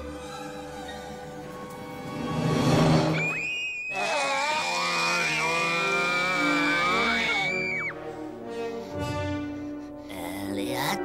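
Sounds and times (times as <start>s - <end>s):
film music: 0.0s - 11.0s
girl screaming: 3.2s - 8.0s.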